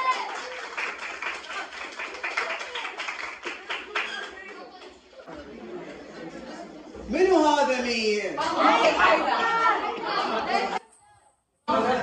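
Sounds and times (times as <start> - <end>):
boys clapping hands: 0.0 - 5.0
boys chattering: 2.4 - 10.9.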